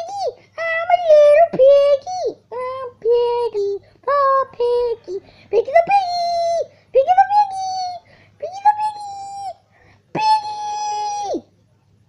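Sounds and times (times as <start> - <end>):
child squealing: 10.2 - 11.5.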